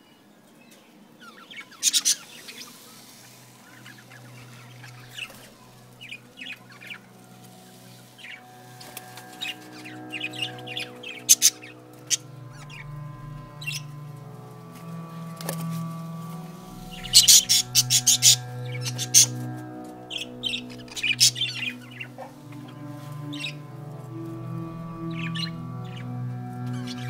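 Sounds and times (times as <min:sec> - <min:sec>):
steady low hum: 0:03.2 - 0:27.0
budgerigars chirping: 0:25.0 - 0:26.1.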